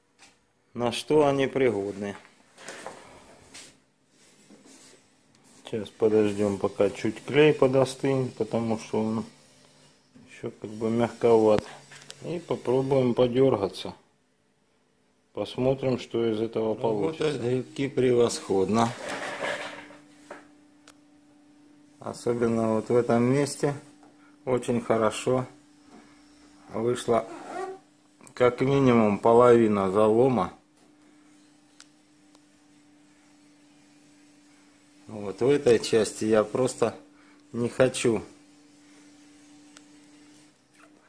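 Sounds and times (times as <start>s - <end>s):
faint steady hum: 0.0s - 41.0s.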